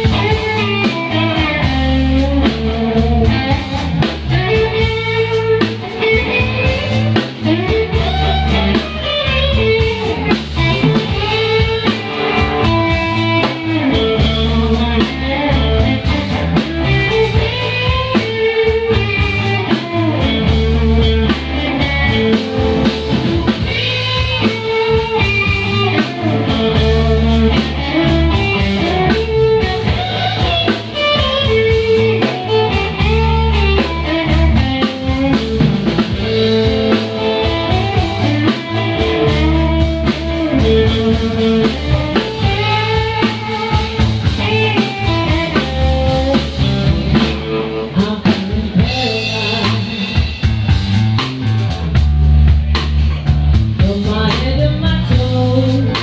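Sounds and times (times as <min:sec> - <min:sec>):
blues band playing: 0:00.0 - 0:56.0.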